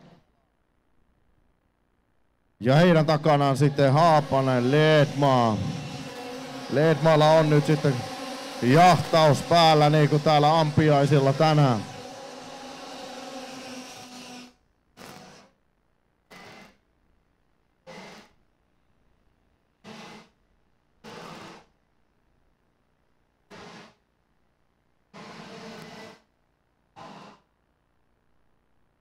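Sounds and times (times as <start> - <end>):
kart engines buzzing: 2.6 - 14.5.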